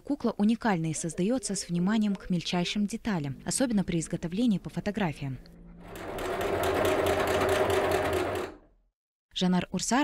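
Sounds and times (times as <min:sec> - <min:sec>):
sewing machine stitching: 0:05.8 - 0:08.7.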